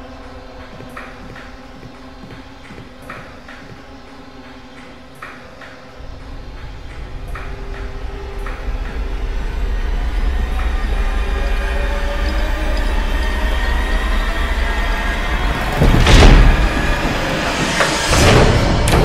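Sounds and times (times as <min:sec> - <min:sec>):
low rumbling drone: 0:00.0 - 0:19.0.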